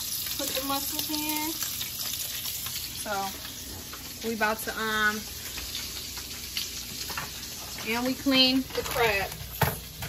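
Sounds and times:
food sizzling in a pan: 0:00.0 - 0:10.0
small crackles: 0:00.1 - 0:04.4, 0:05.0 - 0:10.0.

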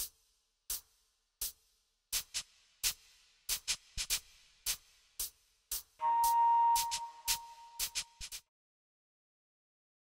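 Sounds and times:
clicky electronic percussion hits: 0:06.0 - 0:08.1.

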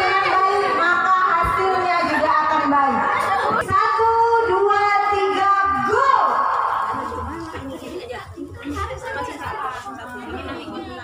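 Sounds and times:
mixed voices: 0:00.0 - 0:11.0.

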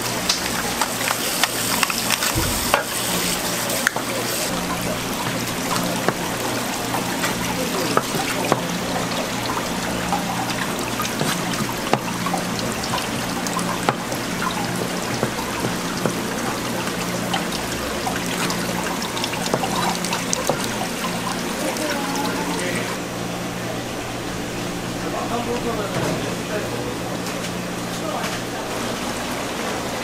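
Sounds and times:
tap water running: 0:00.0 - 0:23.0.

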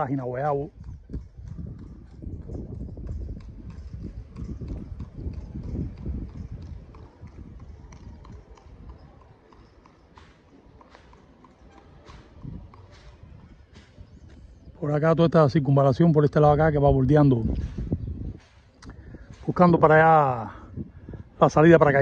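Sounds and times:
horse hooves on pavement: 0:00.0 - 0:22.0.

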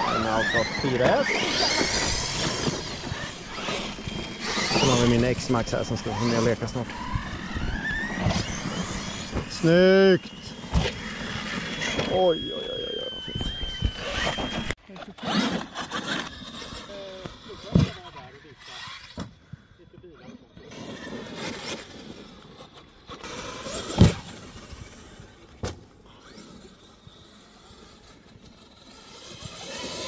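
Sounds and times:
electric motors whining: 0:00.0 - 0:30.0.

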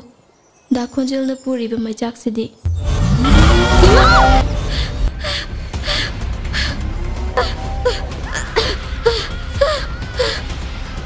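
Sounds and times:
background music: 0:02.7 - 0:11.0
woman panting and whimpering: 0:04.7 - 0:06.8, 0:07.4 - 0:10.6.

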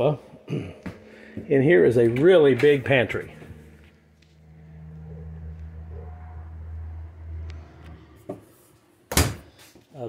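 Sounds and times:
vehicle engine rumble passing: 0:00.0 - 0:09.7.

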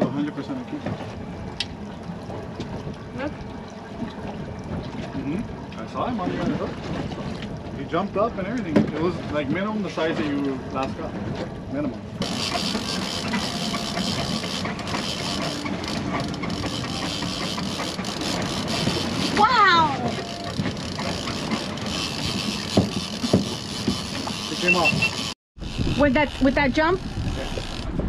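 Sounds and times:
wind and sea rushing: 0:00.0 - 0:28.0.

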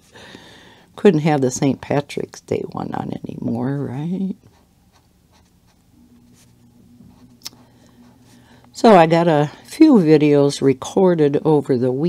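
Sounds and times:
marker scratching on paper: 0:04.4 - 0:07.4.

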